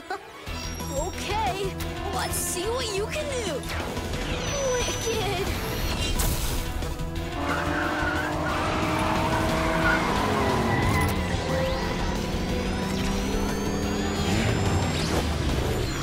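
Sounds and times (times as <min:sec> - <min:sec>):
background music: 0:00.0 - 0:16.0
tyres skidding: 0:06.5 - 0:16.0
race car engine running hard: 0:07.0 - 0:16.0.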